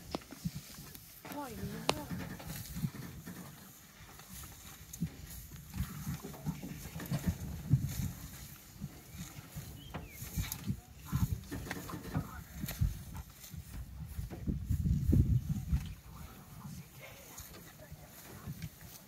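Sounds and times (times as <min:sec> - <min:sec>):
grass rustling: 0:00.0 - 0:19.0
low thuds: 0:04.3 - 0:16.4.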